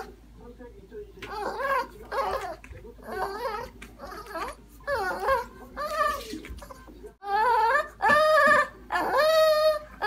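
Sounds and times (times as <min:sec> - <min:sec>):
dog vocal calls: 0:01.3 - 0:10.0.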